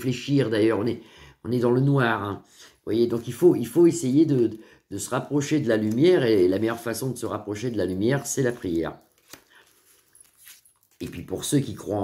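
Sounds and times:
tarot cards tapping and clicking: 5.5s - 6.6s, 8.2s - 11.1s.

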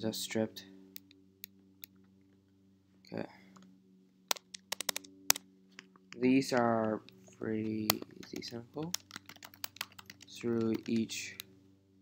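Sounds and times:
faint steady hum: 0.0s - 12.0s
computer keyboard typing: 4.3s - 5.1s, 7.6s - 11.4s.

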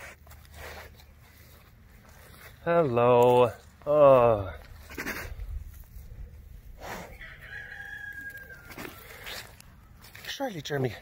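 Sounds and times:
rooster crowing: 7.1s - 9.4s.

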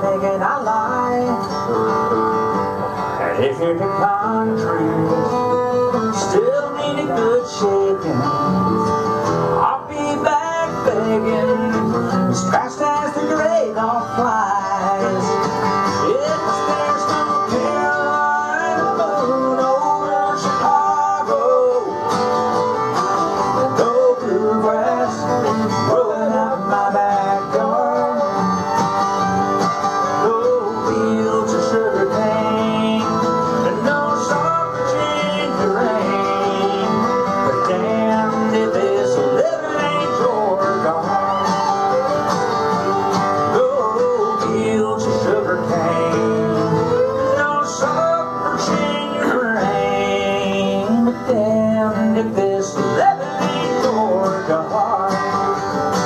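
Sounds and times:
strummed acoustic guitar: 0.0s - 56.0s
fiddle melody: 5.1s - 56.0s.

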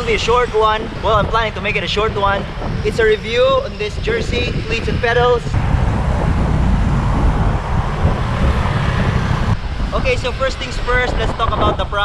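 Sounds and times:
low wind rumble: 0.0s - 12.0s
motorcycles and cars passing: 3.5s - 11.7s.

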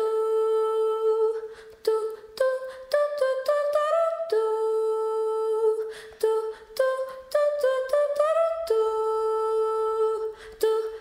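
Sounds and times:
person humming melody: 0.0s - 11.0s.

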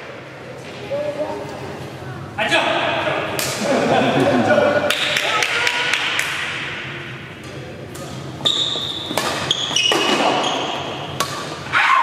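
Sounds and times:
chatter of voices in a hall: 0.0s - 8.9s
badminton rackets striking shuttlecock: 9.1s - 11.6s.

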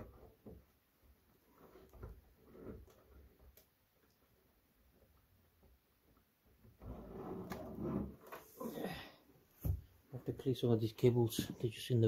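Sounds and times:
cables scraping and rustling: 1.3s - 4.5s.

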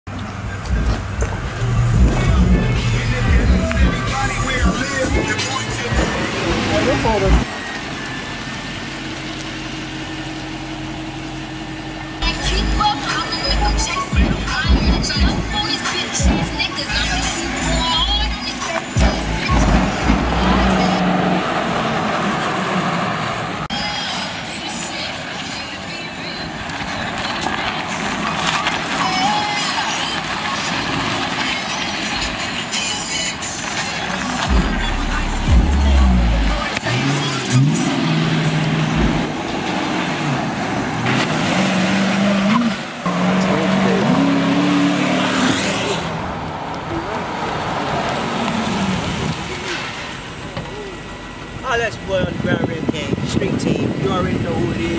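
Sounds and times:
car engine revving: 0.1s - 54.9s
music with vocals: 0.4s - 7.4s, 12.2s - 21.1s, 23.7s - 39.2s.

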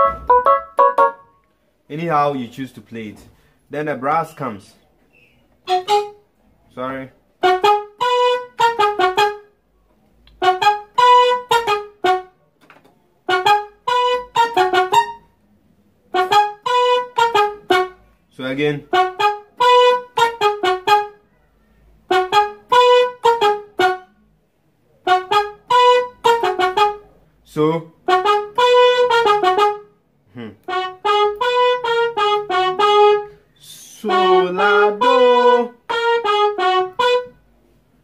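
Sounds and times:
keyboard brass staccato riff: 0.0s - 2.2s, 5.6s - 9.6s, 10.3s - 12.5s, 13.2s - 21.3s, 22.0s - 24.3s, 24.9s - 37.6s.

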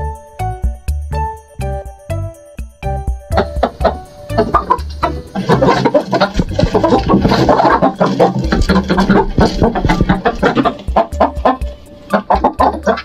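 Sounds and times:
background music: 0.0s - 13.0s
chicken clucking: 3.3s - 13.0s.

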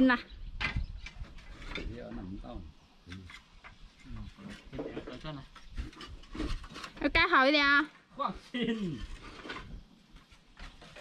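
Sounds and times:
clay roof tiles clinking: 8.6s - 11.0s.

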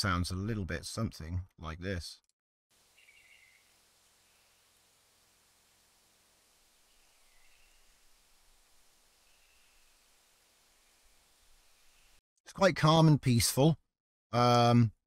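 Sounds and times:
even hiss: 2.8s - 12.2s
faint bird-like chirps: 2.9s - 4.7s, 6.8s - 12.2s.

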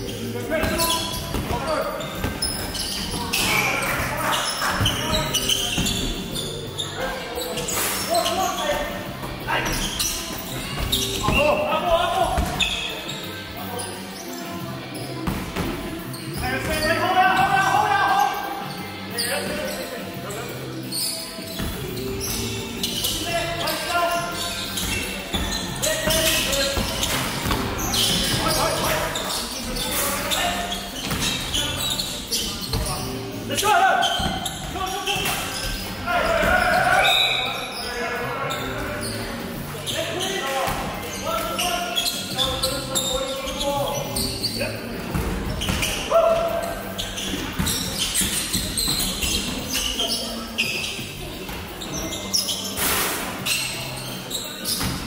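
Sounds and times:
players calling out: 20.5s - 44.9s.

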